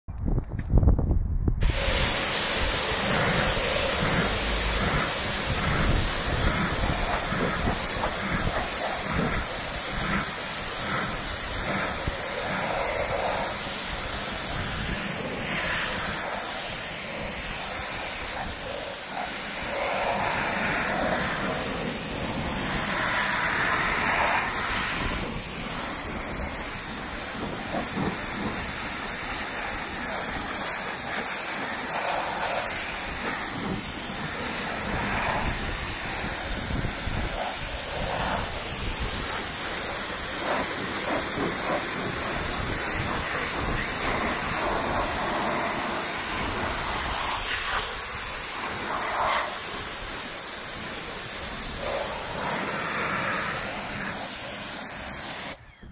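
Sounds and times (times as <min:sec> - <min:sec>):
pressure washer spraying water: 0:01.6 - 0:55.6.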